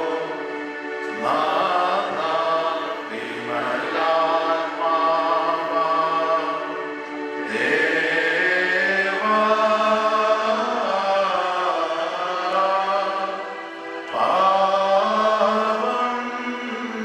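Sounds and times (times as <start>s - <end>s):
sung liturgical chant: 0.0s - 17.0s.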